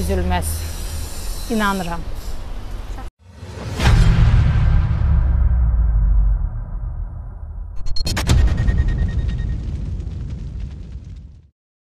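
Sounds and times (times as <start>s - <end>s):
low cinematic boom rumble: 3.3s - 11.5s.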